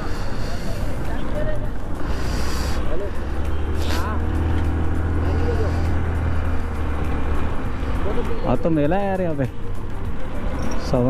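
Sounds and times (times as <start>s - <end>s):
people talking nearby: 0.0s - 6.5s, 7.8s - 9.6s
motor scooter engine: 0.0s - 8.6s
wind and road noise: 0.0s - 11.0s.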